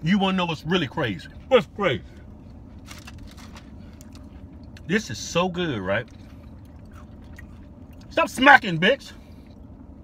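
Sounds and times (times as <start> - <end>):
steady low car hum: 0.0 - 10.0
chewing and lip-smacking: 2.4 - 4.9, 6.0 - 8.2.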